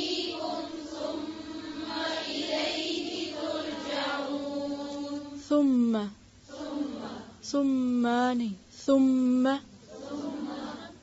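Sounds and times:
woman chanting recitation: 0:00.0 - 0:11.0.

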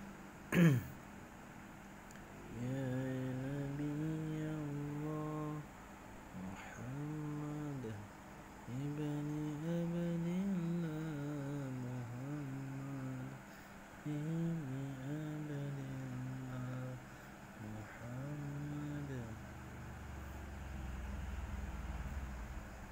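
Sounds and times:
person humming low: 0:02.5 - 0:05.7, 0:06.3 - 0:08.1, 0:08.7 - 0:22.6.

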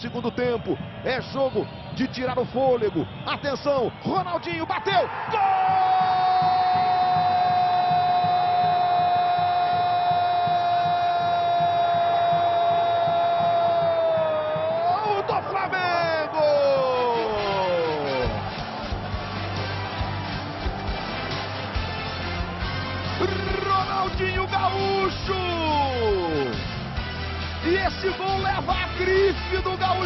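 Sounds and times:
crowd noise: 0:12.0 - 0:27.6.

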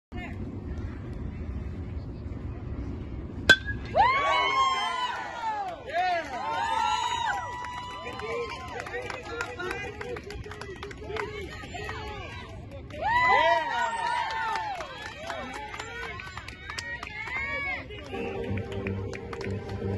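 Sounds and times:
metal bat hitting ball: 0:03.5 - 0:03.9
spectators shouting and cheering: 0:03.8 - 0:08.8.

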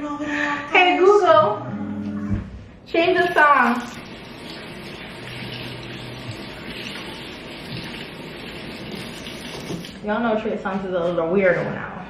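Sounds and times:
water running from tap: 0:03.1 - 0:10.1.

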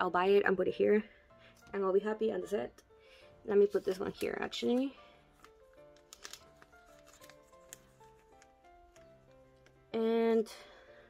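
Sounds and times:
slow background music: 0:00.0 - 0:11.0
card sliding into plastic sleeve: 0:05.4 - 0:09.8.

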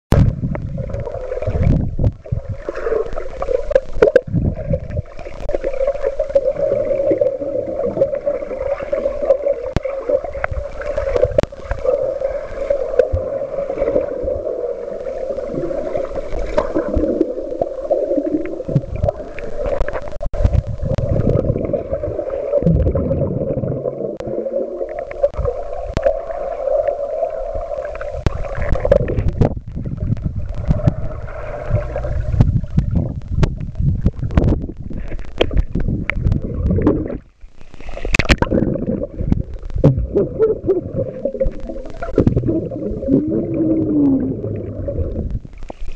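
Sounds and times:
muffled underwater bubbling: 0:00.1 - 0:45.9.

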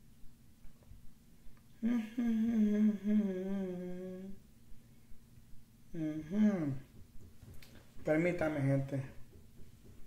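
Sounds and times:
man humming: 0:01.7 - 0:04.5, 0:05.9 - 0:07.0.

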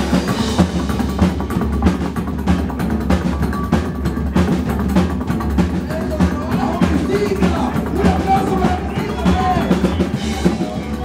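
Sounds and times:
double bass: 0:00.0 - 0:11.0
drum kit steady beat: 0:00.0 - 0:11.0
guitar: 0:00.0 - 0:11.0.

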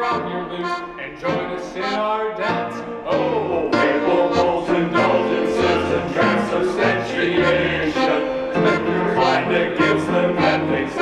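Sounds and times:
accordion: 0:00.0 - 0:11.0
men's vocal group singing polka: 0:00.0 - 0:11.0
oom-pah bass: 0:00.0 - 0:11.0
piano: 0:00.0 - 0:11.0.

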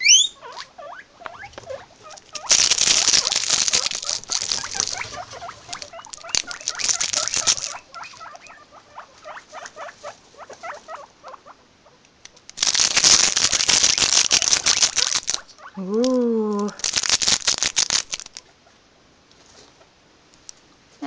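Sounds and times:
guinea pigs squeaking: 0:00.0 - 0:18.8
hay rustling: 0:02.4 - 0:08.3.

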